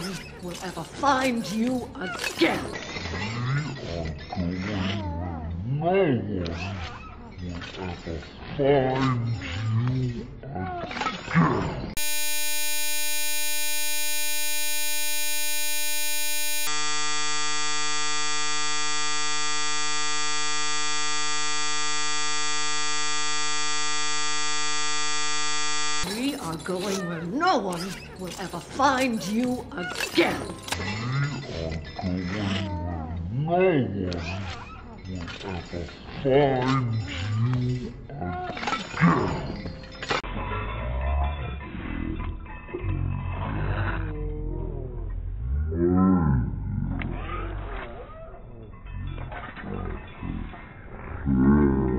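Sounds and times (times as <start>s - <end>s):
harsh electronic buzzing tone: 12.0s - 26.2s.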